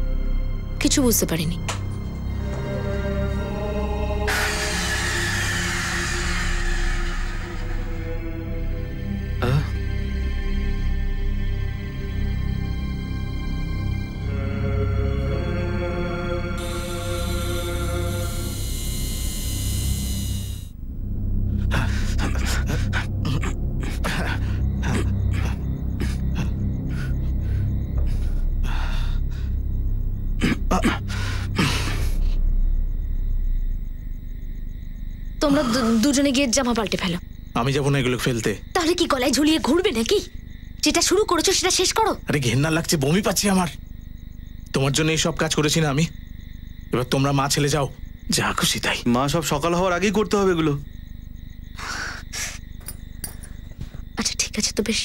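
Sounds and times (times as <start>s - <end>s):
crickets chirping: 0.0s - 55.0s
steady low hum: 1.8s - 38.0s
short hissing sounds: 4.3s - 8.0s, 16.6s - 20.8s, 51.8s - 52.6s.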